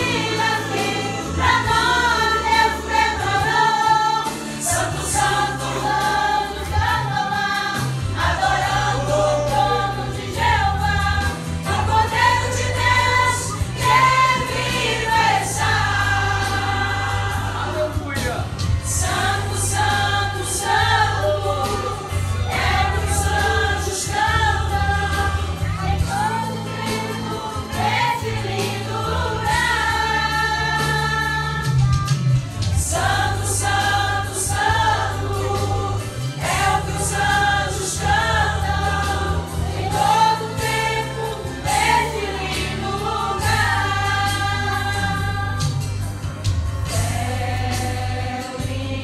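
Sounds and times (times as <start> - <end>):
women's choir singing gospel: 0.0 - 49.0
deep bass: 4.7 - 49.0.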